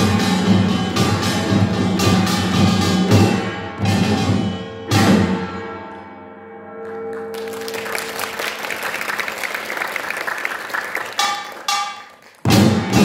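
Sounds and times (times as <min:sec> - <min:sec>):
gongs and drums ringing: 0:00.0 - 0:05.9, 0:11.1 - 0:13.0
audience applause: 0:06.8 - 0:12.5.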